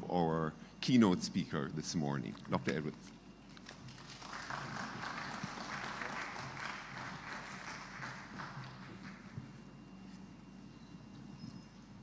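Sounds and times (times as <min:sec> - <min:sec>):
audience applauding: 0:03.8 - 0:09.4.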